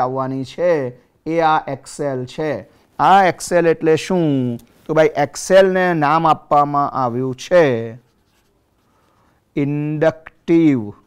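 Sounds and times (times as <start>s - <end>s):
man's voice: 0.0s - 8.0s, 9.6s - 11.0s
marker scratching on paper: 7.6s - 9.3s.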